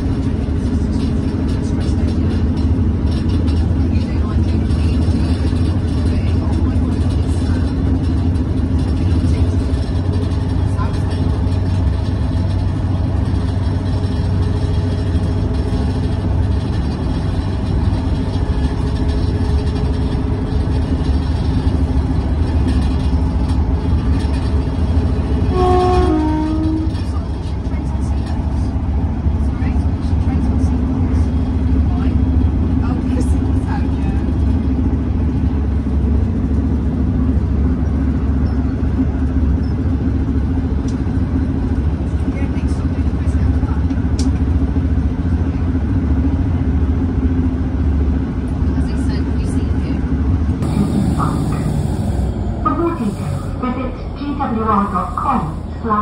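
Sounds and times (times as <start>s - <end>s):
train rumbling on rails: 0.0s - 56.0s
train horn: 25.4s - 27.0s.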